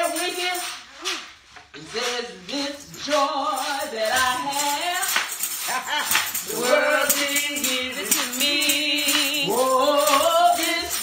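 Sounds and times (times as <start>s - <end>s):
tambourine shaken to a beat: 0.0s - 11.0s
woman singing and calling out: 0.0s - 11.0s.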